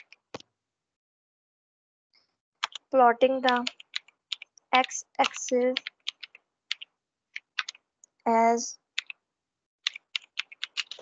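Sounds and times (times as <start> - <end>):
computer keyboard typing: 0.0 - 0.2, 2.6 - 7.9, 8.9 - 9.2, 9.8 - 11.0.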